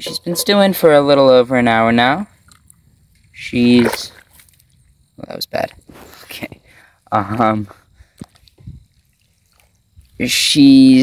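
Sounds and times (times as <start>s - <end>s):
dye dripping: 2.3s - 5.9s, 7.9s - 10.3s.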